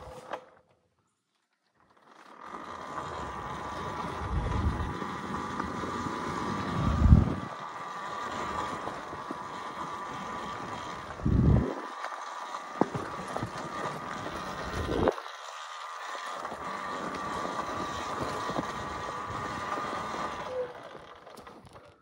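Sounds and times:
tyre and trail noise: 0.0s - 22.0s
electric motorbike motor whine: 1.8s - 22.0s
heavy low rumbles: 4.2s - 5.0s, 6.6s - 7.5s, 11.2s - 11.8s.

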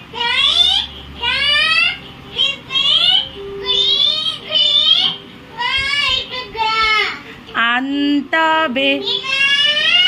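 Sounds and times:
child singing wordless notes: 0.0s - 7.6s, 8.2s - 10.0s.

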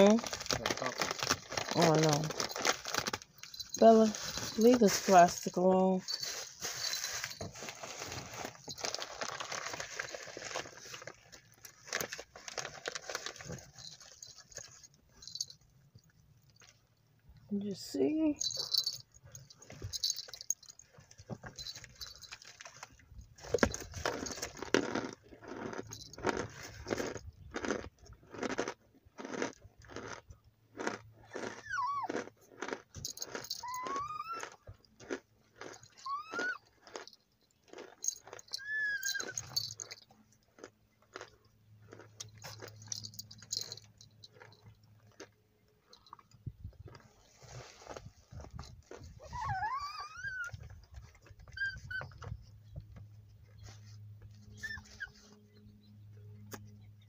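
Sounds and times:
crunching and chewing: 0.0s - 5.1s, 6.0s - 17.5s, 18.4s - 55.8s
plastic bag crinkling: 0.0s - 15.5s, 18.4s - 20.9s
small dog whining: 31.4s - 32.2s, 33.6s - 34.6s, 36.0s - 36.7s, 38.6s - 39.5s, 49.2s - 52.4s, 54.5s - 55.4s.

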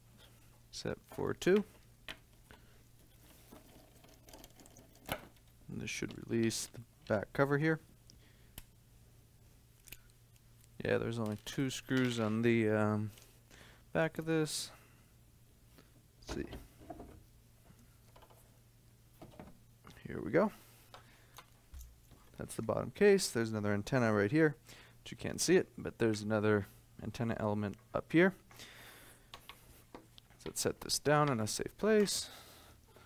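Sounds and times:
faint room hum: 0.0s - 33.0s.

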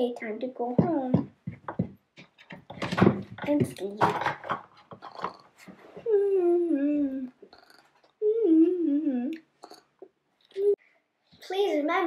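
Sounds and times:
girl humming a wavering tune: 6.0s - 7.4s, 8.2s - 9.4s.

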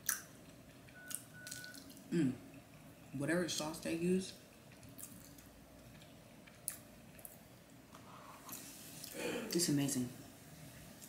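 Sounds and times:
person humming mmm: 2.1s - 2.4s.

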